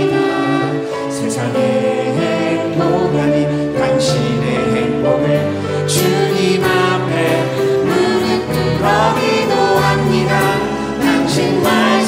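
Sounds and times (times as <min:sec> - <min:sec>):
keyboard and guitar accompaniment: 0:00.0 - 0:12.0
women singing together: 0:06.0 - 0:12.0.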